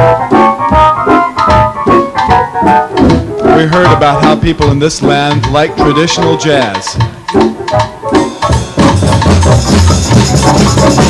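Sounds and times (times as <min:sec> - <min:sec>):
live rock band playing: 0:00.0 - 0:11.0
percussion strikes: 0:00.0 - 0:11.0.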